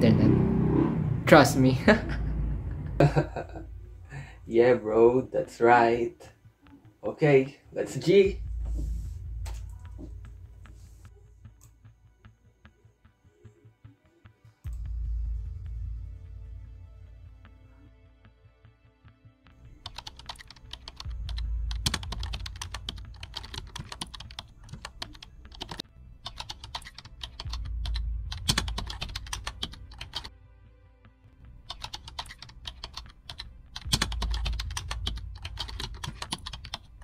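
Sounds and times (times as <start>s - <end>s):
fast typing on laptop keyboard: 19.8s - 30.3s, 31.7s - 37.0s.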